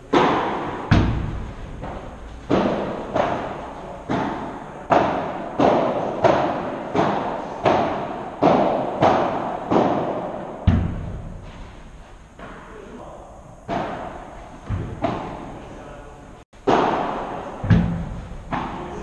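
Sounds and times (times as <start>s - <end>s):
ball bouncing on court: 0.1s - 11.3s
padel rackets hitting ball: 0.1s - 11.6s, 12.3s - 12.8s, 13.7s - 15.6s, 16.6s - 19.0s.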